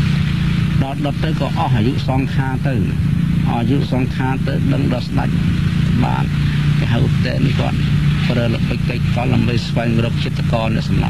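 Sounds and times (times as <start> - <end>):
steady low hum: 0.0 - 11.0
man talking: 0.8 - 11.0.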